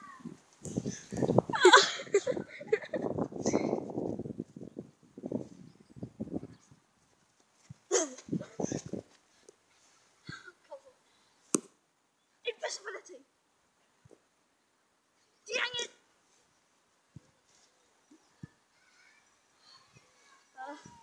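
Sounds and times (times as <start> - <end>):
wind rumbling on microphone: 0.0 - 6.9, 7.7 - 9.1
child vocal sounds: 18.8 - 21.0.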